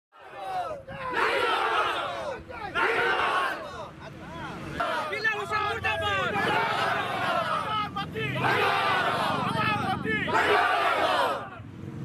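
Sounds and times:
crowd of men chanting: 0:00.2 - 0:11.6.

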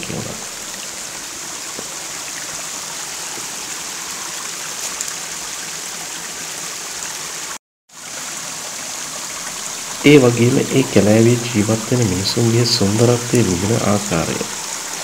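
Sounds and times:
stream running over rocks: 0:00.0 - 0:15.0.

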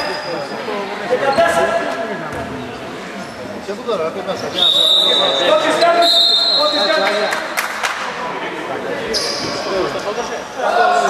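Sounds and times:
voices echoing in a hall: 0:00.0 - 0:11.0.

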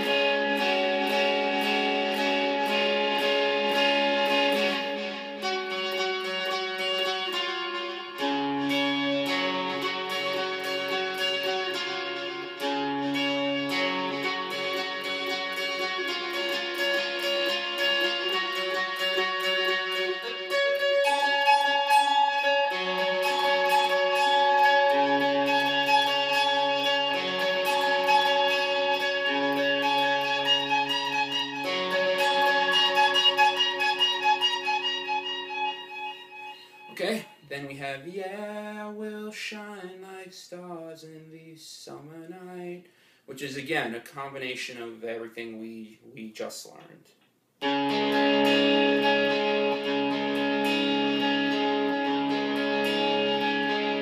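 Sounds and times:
electric guitar ringing chords: 0:00.0 - 0:37.7, 0:47.6 - 0:54.0.

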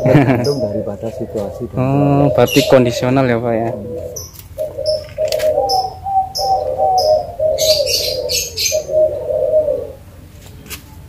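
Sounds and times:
dove cooing: 0:00.0 - 0:10.2.

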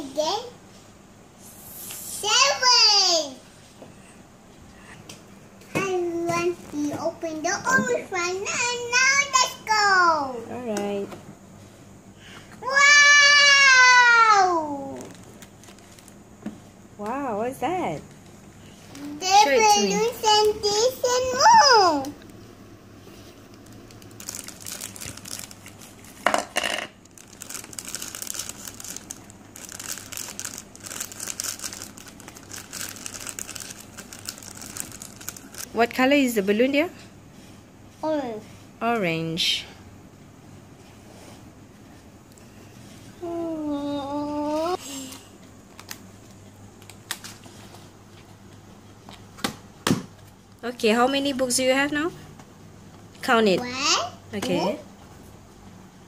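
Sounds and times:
plastic bag crinkling: 0:14.9 - 0:16.2, 0:23.4 - 0:26.2, 0:27.0 - 0:35.7.

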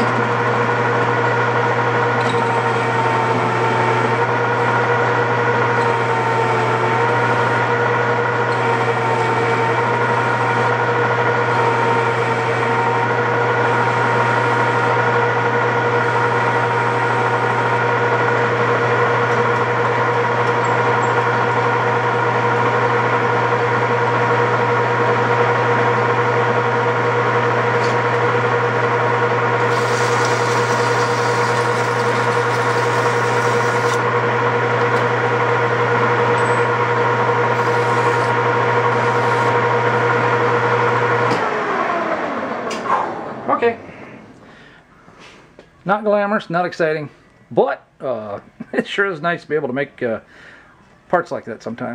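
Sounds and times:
metal lathe whining: 0:00.0 - 0:42.8.

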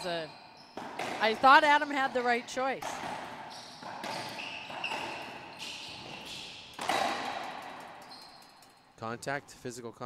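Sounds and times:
sneakers squeaking on hardwood: 0:00.0 - 0:08.9
ball strikes echoing: 0:00.7 - 0:08.4.

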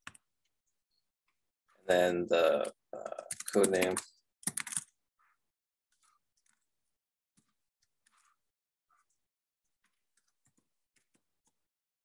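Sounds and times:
computer keyboard keystrokes: 0:03.3 - 0:04.9.

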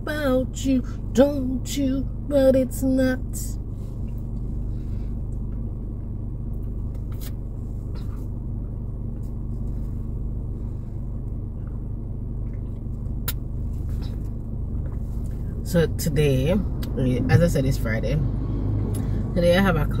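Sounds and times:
car cabin rumble: 0:00.0 - 0:20.0.

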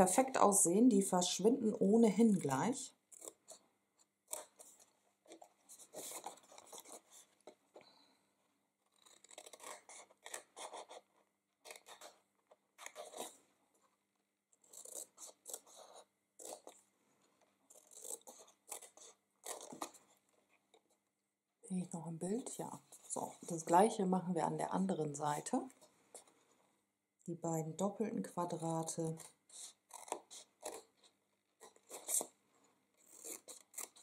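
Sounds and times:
scissors cutting cardstock: 0:08.9 - 0:12.2, 0:14.6 - 0:16.8, 0:17.7 - 0:20.1, 0:28.4 - 0:32.3, 0:33.0 - 0:34.0.

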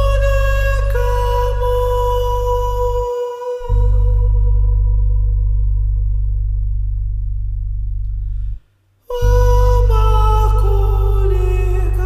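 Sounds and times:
deep bass drone: 0:00.0 - 0:12.0.

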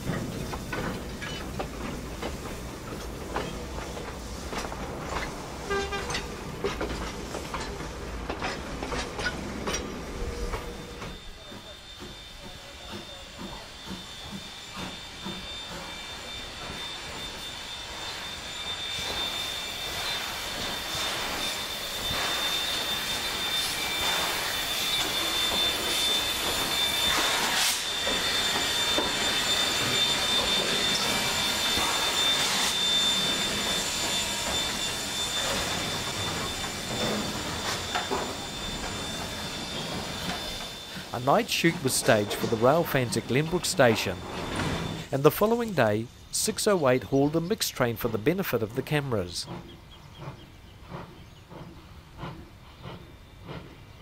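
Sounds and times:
steam hissing: 0:00.0 - 0:54.0
train carriages rolling past: 0:00.0 - 0:54.0
high-pitched squeal: 0:08.4 - 0:49.5.

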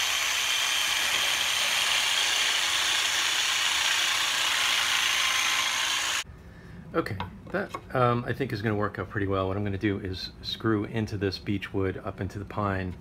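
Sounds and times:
jigsaw cutting wood: 0:00.0 - 0:06.2.

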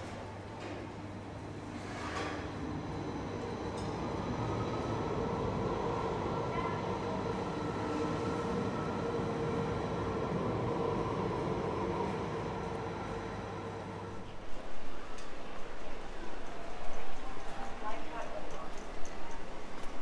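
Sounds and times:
tram rumbling past: 0:01.4 - 0:17.8.

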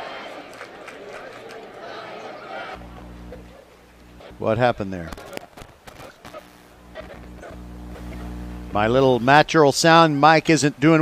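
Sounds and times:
steady low hum: 0:02.8 - 0:09.4.

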